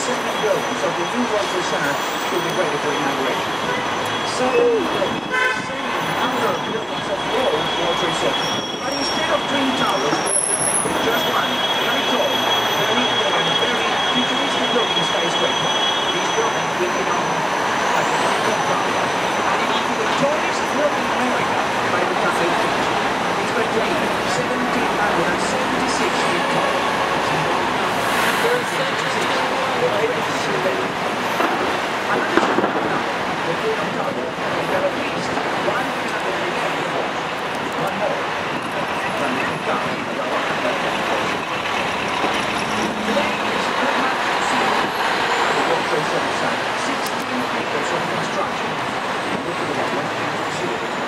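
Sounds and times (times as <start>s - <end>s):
city traffic and engine noise: 0.0s - 51.0s.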